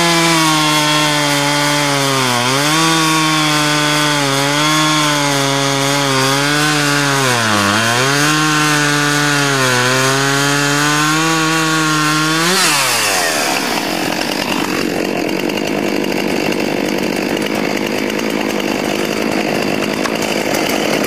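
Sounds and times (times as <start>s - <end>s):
chainsaw cutting through log: 0.0s - 21.0s.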